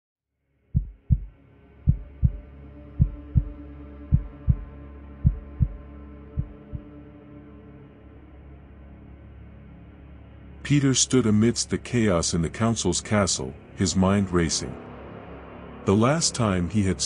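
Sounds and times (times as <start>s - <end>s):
heartbeat double thumps: 0.8s - 2.4s, 3.0s - 6.9s
low steady drone: 0.8s - 17.0s.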